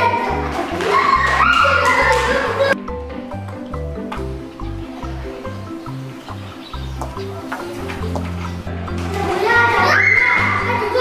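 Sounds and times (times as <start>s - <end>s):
children shouting and playing: 0.0s - 2.9s, 4.8s - 11.0s
background music: 0.0s - 11.0s.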